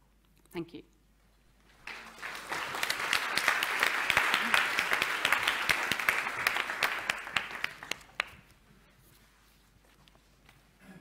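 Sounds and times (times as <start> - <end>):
audience applauding: 1.7 - 8.5.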